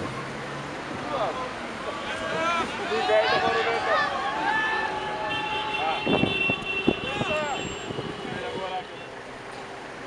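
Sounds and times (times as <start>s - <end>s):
people calling out: 1.8s - 6.2s.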